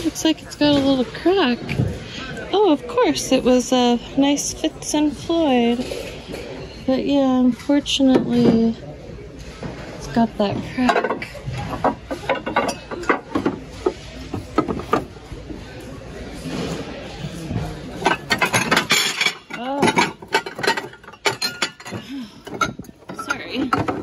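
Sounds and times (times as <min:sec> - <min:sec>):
ceramic dishes clinking: 0:10.8 - 0:15.1, 0:18.0 - 0:24.0.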